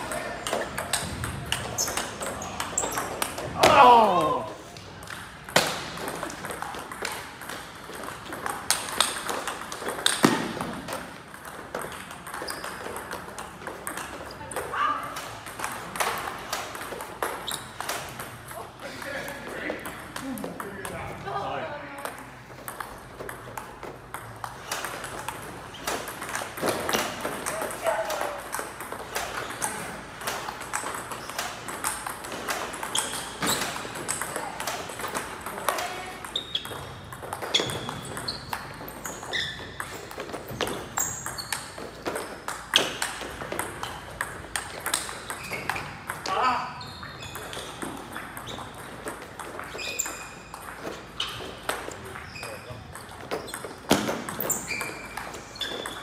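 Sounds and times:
table tennis balls clicking: 0:00.0 - 0:21.1, 0:22.0 - 0:56.0.

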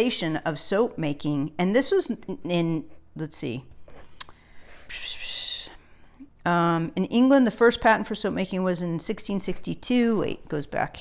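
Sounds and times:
woman whispering: 0:04.9 - 0:05.8.

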